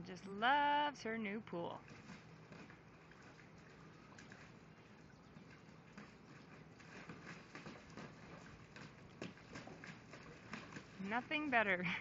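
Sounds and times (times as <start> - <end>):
puppy pattering in water: 1.8 - 12.0.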